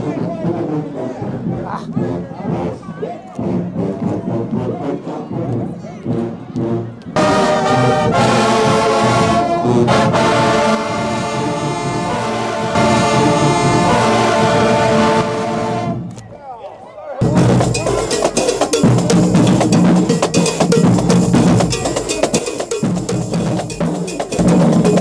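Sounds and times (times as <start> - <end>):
drumline fast cadence: 0.1 - 16.0, 17.2 - 25.0
brass section sustained notes: 6.2 - 16.1.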